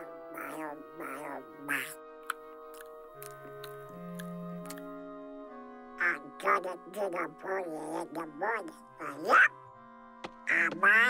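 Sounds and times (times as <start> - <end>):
cartoon duck quacking voice: 0.0 - 2.0, 6.0 - 9.5, 10.5 - 11.0
orchestral music soft sustained notes: 0.0 - 11.0.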